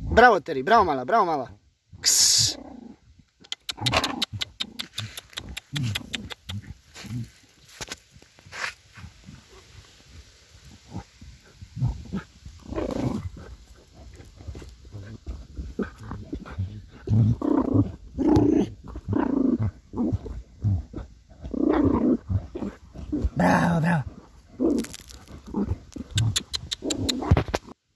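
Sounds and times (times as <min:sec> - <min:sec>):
dog growling: 0:10.8 - 0:27.4.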